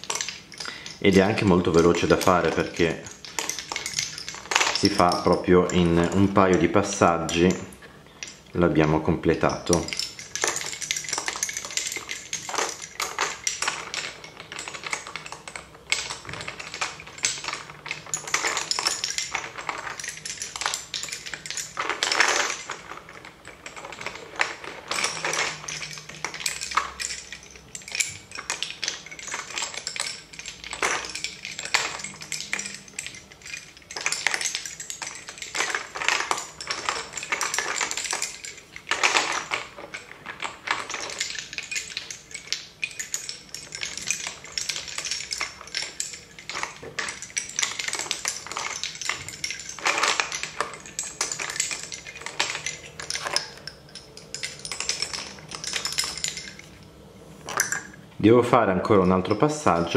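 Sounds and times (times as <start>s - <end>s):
wooden bobbins clacking together: 0.0s - 58.1s.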